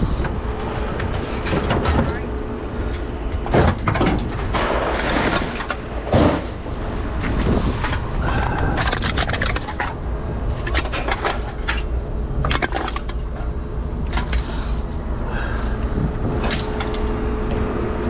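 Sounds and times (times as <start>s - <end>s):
steady low rumble: 0.0s - 18.0s
metal scrap clattering and scraping: 0.9s - 8.0s, 8.7s - 13.5s.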